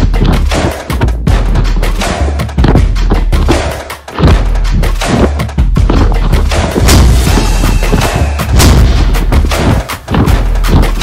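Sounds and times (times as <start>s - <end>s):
deep booming bass hits: 4.2s - 11.0s
sharp impact effects: 6.8s - 9.9s.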